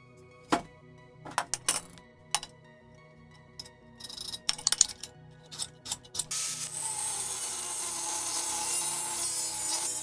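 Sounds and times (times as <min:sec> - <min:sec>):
soft background music: 0:00.0 - 0:10.0
metal tools clinking on steel pipe: 0:03.6 - 0:06.4.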